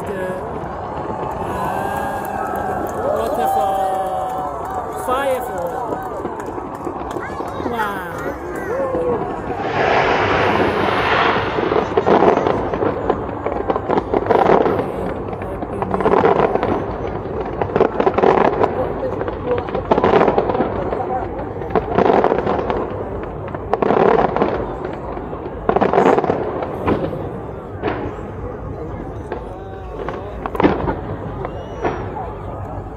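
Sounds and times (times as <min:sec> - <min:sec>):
fireworks bursting and crackling: 0:00.0 - 0:32.9.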